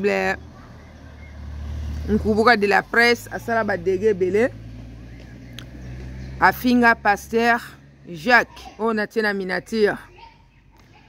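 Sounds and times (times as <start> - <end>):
small car driving: 0.0 - 8.8.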